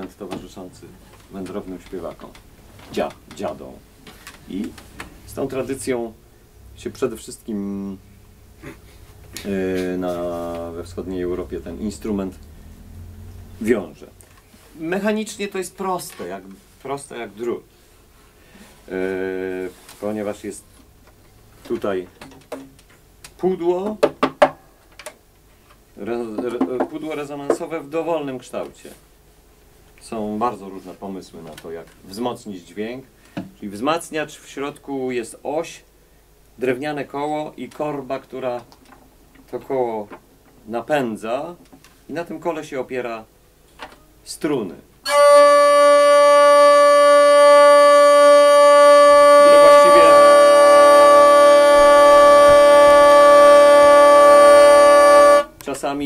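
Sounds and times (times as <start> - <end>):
hurdy-gurdy drone: 45.1 - 55.6.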